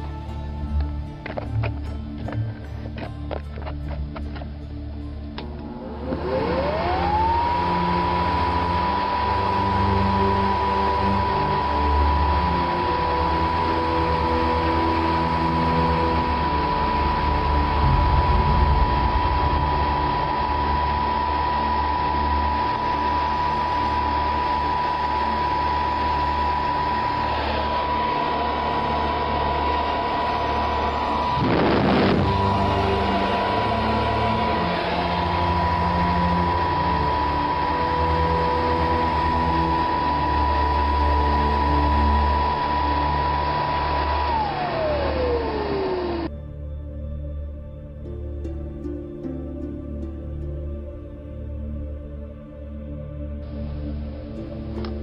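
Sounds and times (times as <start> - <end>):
fan rushing air with whine: 4.0 - 46.4.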